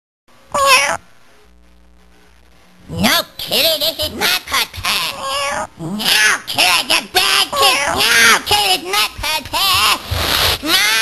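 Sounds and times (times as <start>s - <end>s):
cat meowing: 0.5s - 1.0s.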